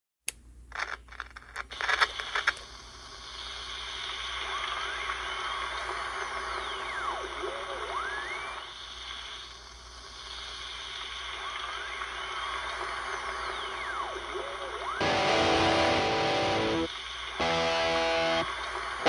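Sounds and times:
steady hiss: 1.7 - 19.0
gliding electronic whistling tones: 4.0 - 9.5, 10.2 - 15.4.

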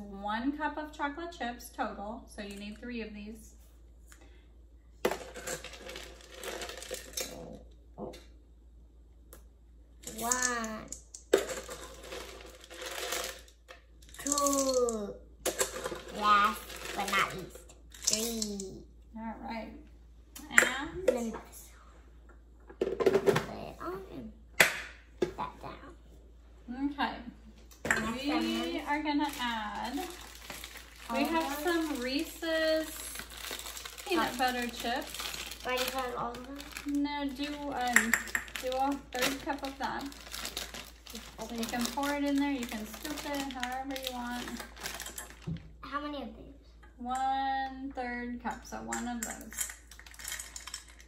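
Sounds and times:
people talking: 0.0 - 3.5, 10.0 - 11.0, 14.2 - 15.2, 16.0 - 19.8, 20.4 - 21.7, 23.3 - 24.3, 25.2 - 26.0, 26.7 - 30.2, 31.0 - 33.3, 34.0 - 40.2, 41.1 - 44.6, 45.8 - 49.6
chocolate chips clinking into metal bowl: 5.1 - 7.4, 10.0 - 14.9, 15.5 - 18.5, 27.9 - 45.4, 48.9 - 51.0
child talking: 10.1 - 11.0, 14.2 - 15.2, 16.1 - 18.9, 21.0 - 21.7, 23.4 - 24.4, 25.2 - 26.0, 28.0 - 29.0, 31.1 - 32.1, 35.6 - 37.0, 45.8 - 46.6.

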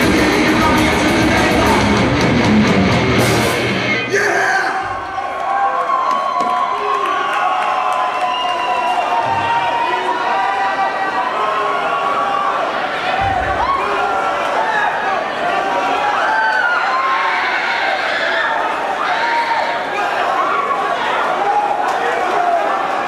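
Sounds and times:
crowd cheering and shouting: 0.0 - 23.0.

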